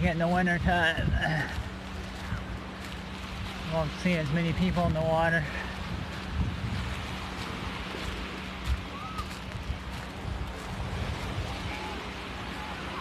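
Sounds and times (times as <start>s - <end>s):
surf waves washing ashore: 0.0s - 13.0s
wind buffeting microphone: 0.0s - 13.0s.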